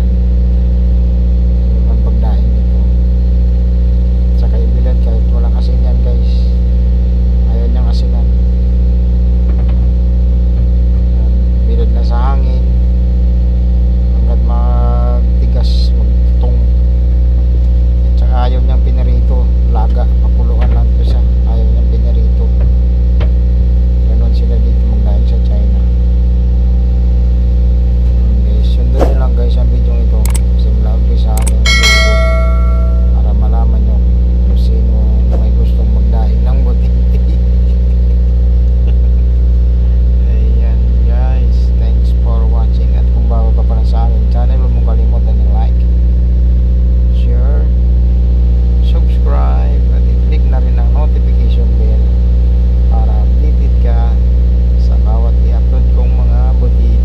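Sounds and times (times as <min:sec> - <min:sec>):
low mechanical hum: 0:00.0 - 0:57.0
short high tone: 0:31.4 - 0:33.2.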